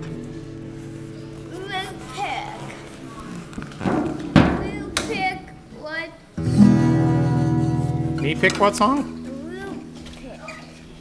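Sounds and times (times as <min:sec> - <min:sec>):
guitar chord strum: 0:00.0 - 0:02.9, 0:06.4 - 0:10.4.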